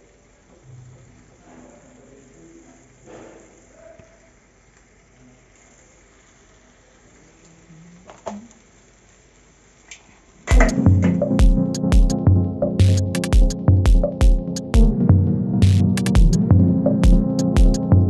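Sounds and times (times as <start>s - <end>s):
electronic music with a beat: 10.5s - 18.0s.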